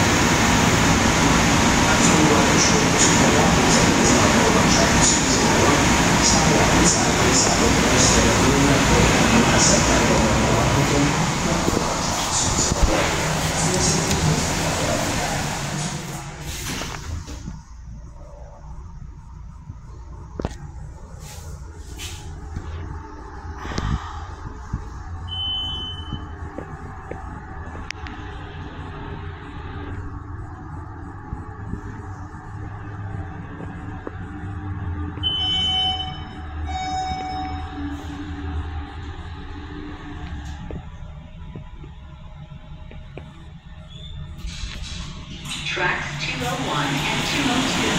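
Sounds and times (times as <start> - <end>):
elevator low hum: 0.0 - 47.9
multi-tone beep: 25.3 - 26.3, 35.2 - 37.8
short electronic beep: 25.3 - 26.4, 35.2 - 37.9.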